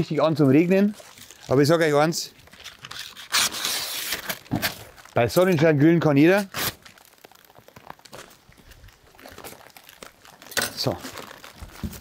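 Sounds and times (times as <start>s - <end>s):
paper crinkling and rustling: 0.0s - 12.0s.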